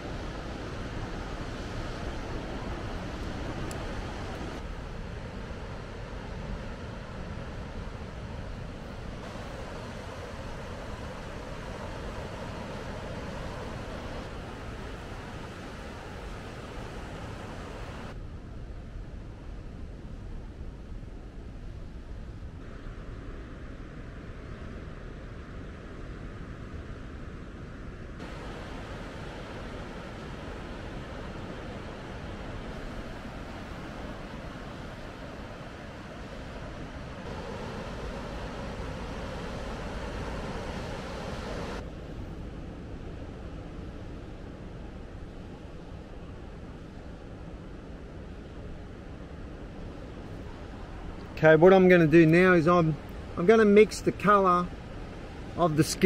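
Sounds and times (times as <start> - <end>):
distant surf breaking on rocks: 0.0 - 18.2, 28.2 - 56.0
wind: 0.0 - 56.0.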